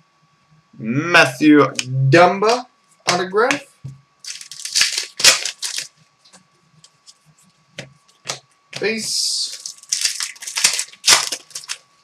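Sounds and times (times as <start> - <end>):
plastic card sleeve rustling: 4.2 - 11.9.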